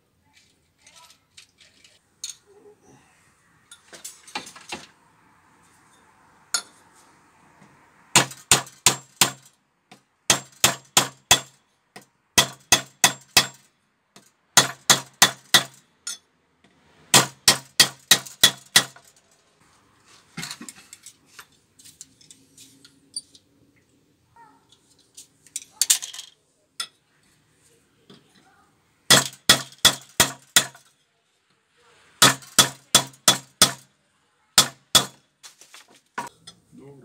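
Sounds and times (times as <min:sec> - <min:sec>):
clinks of tools and metal parts: 0:00.3 - 0:02.6, 0:03.6 - 0:05.0, 0:05.7 - 0:06.9, 0:15.8 - 0:16.3, 0:18.3 - 0:23.6, 0:24.6 - 0:27.4, 0:28.0 - 0:28.5, 0:35.4 - 0:36.7
hammer striking metal: 0:06.5 - 0:06.8, 0:08.1 - 0:09.5, 0:10.3 - 0:11.6, 0:12.4 - 0:13.7, 0:29.1 - 0:30.9, 0:34.6 - 0:35.2.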